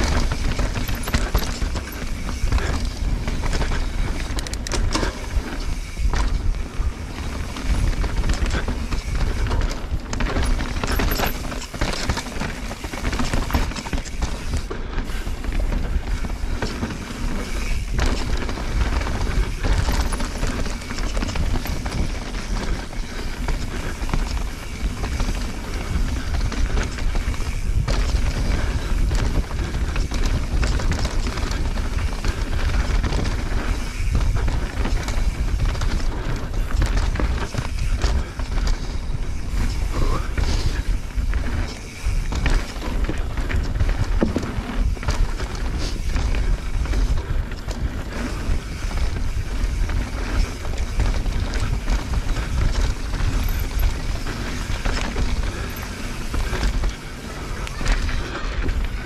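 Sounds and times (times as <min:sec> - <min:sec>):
bike chain and frame clattering: 0:00.0 - 0:59.0
tyres rolling on dirt: 0:00.0 - 0:59.0
wind buffeting microphone: 0:00.0 - 0:59.0.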